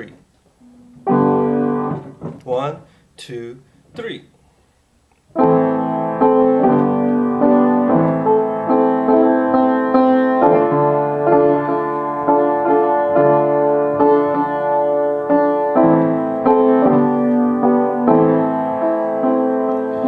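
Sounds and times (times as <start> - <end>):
piano chords: 0.0 - 2.9, 5.3 - 20.0.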